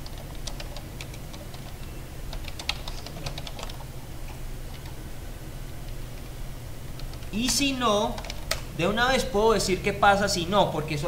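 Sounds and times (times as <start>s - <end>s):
typing on computer keyboard: 0.0s - 3.8s, 7.0s - 8.6s
low hum: 0.0s - 11.0s.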